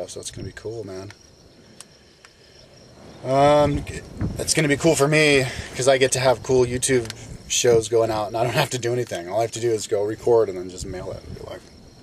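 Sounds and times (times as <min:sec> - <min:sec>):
high-pitched insect trill: 0:00.0 - 0:12.0
faint clicks: 0:01.0 - 0:02.4, 0:07.0 - 0:07.3.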